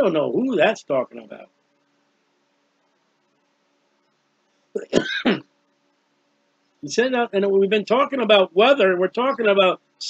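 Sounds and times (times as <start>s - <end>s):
man speaking: 0.0s - 1.4s, 4.8s - 5.0s, 6.8s - 9.8s
man's croaky vocal sound: 4.8s - 5.4s.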